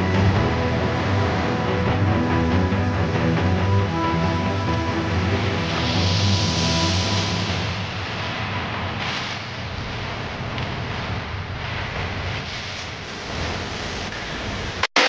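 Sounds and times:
low music notes: 0:00.0 - 0:07.8
steady rushing noise: 0:00.0 - 0:15.0.

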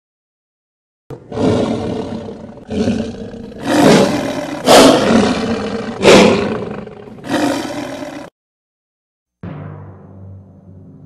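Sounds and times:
big cat roaring: 0:01.1 - 0:08.3.

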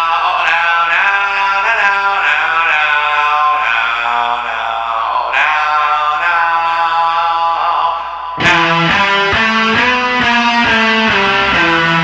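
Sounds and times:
chant-like voice holding notes: 0:00.0 - 0:12.0.

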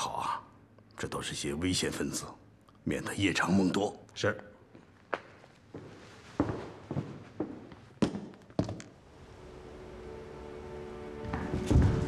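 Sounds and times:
boot heel footsteps on floor: 0:04.8 - 0:08.9
soft sustained music notes: 0:09.1 - 0:12.0.

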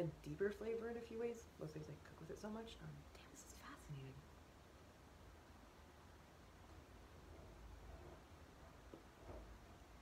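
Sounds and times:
faint breathy whisper: 0:03.0 - 0:04.0.

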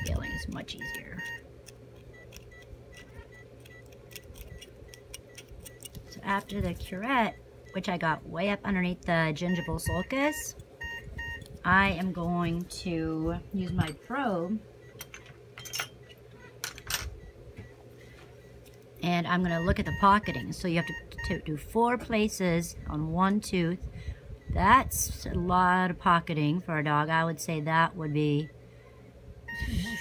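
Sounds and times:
metal dental instruments clicking: 0:00.0 - 0:06.0
faint steady hum: 0:00.0 - 0:30.0
metal curette scraping teeth: 0:01.6 - 0:06.2.

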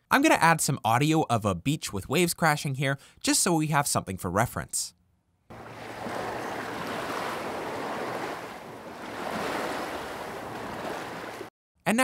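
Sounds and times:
ocean waves washing onto beach: 0:05.5 - 0:11.5.

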